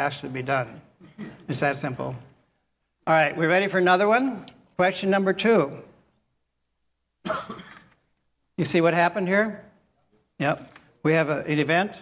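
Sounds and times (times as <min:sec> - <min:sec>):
person coughing: 0:01.0 - 0:01.5, 0:07.2 - 0:08.0.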